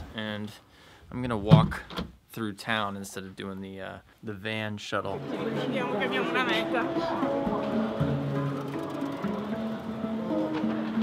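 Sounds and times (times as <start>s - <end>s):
music with long held notes: 5.2s - 11.0s.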